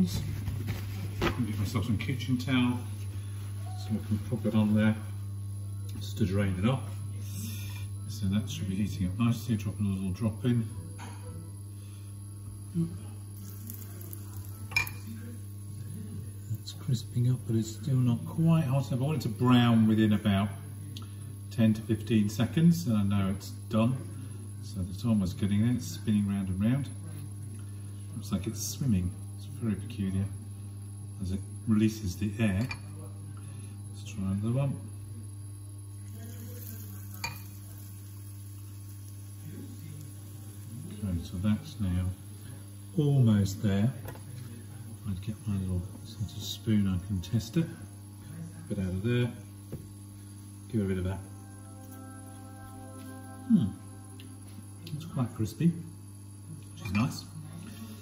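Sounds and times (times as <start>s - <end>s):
batter sizzling in oil: 11.6s - 26.9s, 27.5s - 58.0s
low hum: 45.8s - 58.0s.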